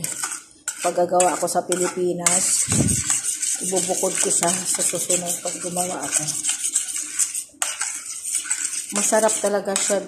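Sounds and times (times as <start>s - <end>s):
metal spoon scraping pot: 0.0s - 10.0s.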